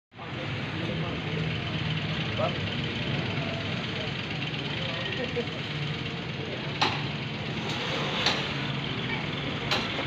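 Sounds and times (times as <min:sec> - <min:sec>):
engine-like hum: 0:00.1 - 0:10.0
faint voices: 0:00.2 - 0:10.0.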